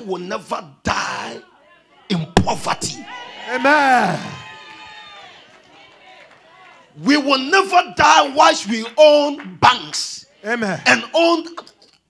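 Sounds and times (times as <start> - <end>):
congregation answering: 1.0 - 4.7, 5.4 - 11.7
preacher shouting: 1.4 - 7.0, 9.9 - 11.2.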